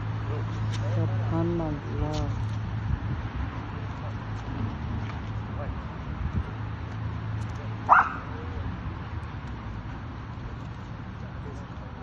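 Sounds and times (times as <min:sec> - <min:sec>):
dog barking: 0:07.9 - 0:08.3.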